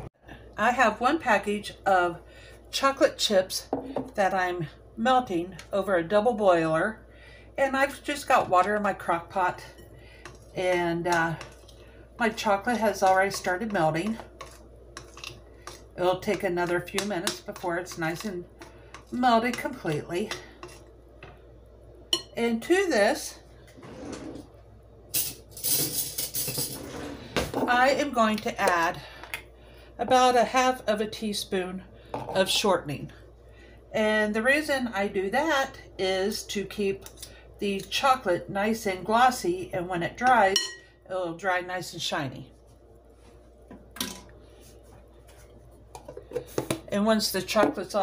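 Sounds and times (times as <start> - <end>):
metal utensils clinking in drawer: 25.2 - 27.0.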